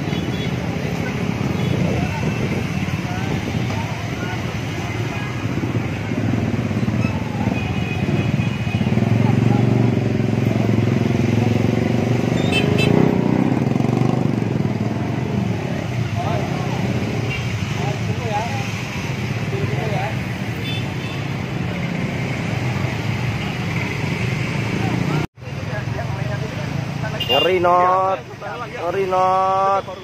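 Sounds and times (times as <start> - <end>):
motorcycle engines: 0.0 - 30.0
street traffic: 0.0 - 30.0.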